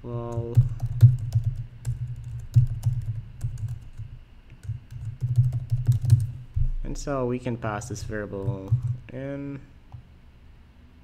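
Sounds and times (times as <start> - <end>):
typing on computer keyboard: 0.3 - 6.4, 7.9 - 9.0.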